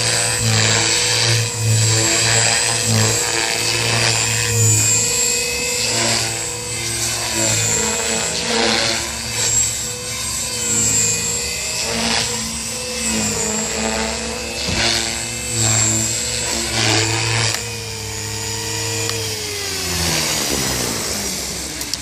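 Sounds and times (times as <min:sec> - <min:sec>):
rc helicopter rotor whining: 0:00.0 - 0:22.0.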